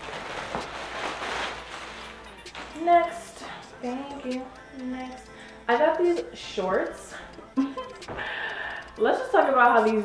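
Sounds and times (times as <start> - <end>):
plastic bag rustling and crinkling: 0.0 - 3.6.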